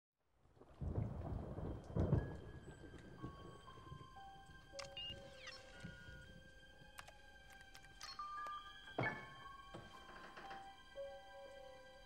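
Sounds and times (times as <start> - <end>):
low rumble of thunder: 0.6 - 4.0.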